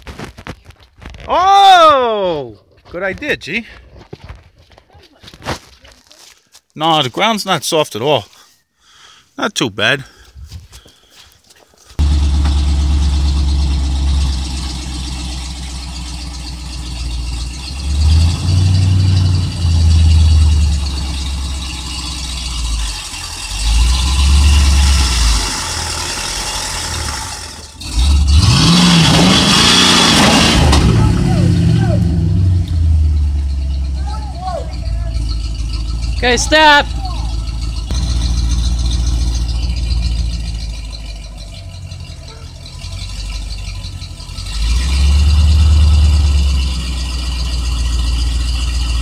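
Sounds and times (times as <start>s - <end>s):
pickup engine starting and revving: 12.0s - 49.0s.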